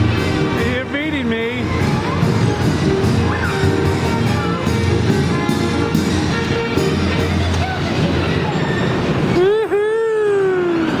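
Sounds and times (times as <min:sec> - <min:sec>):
carousel music: 0:00.0 - 0:11.0
carousel running noise: 0:00.0 - 0:11.0.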